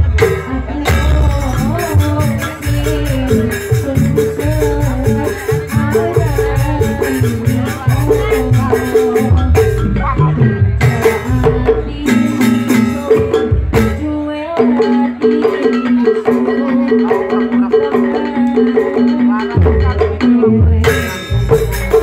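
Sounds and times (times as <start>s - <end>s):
women singing into microphones: 0.0s - 21.2s
deep drum beats: 0.0s - 22.0s
percussion ensemble with pitched notes: 0.0s - 22.0s.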